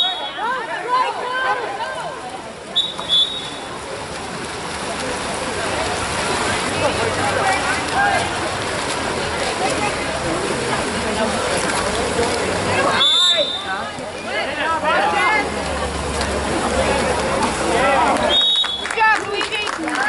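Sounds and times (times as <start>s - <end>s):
referee whistle blowing: 0.0s - 0.5s, 2.8s - 3.7s, 12.9s - 13.8s, 18.3s - 18.9s
spectators chattering and calling out: 0.0s - 20.0s
water splashing: 0.0s - 20.0s.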